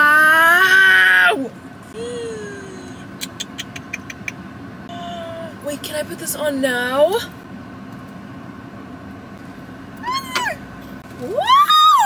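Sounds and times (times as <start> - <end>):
woman humming: 2.0 - 3.1, 4.9 - 5.6.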